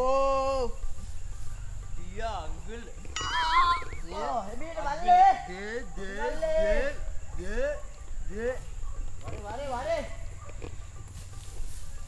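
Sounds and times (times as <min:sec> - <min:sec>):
person giving wavering cry: 0:03.2 - 0:04.2.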